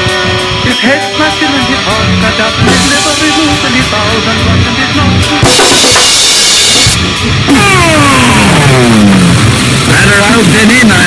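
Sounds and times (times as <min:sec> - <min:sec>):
distorted low end: 0:00.0 - 0:11.0
static-like noise blast: 0:02.7 - 0:11.0.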